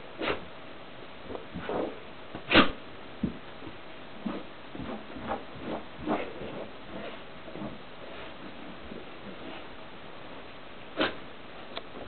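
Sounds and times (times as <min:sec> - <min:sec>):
dog scuffing on carpet: 0:01.5 - 0:09.8.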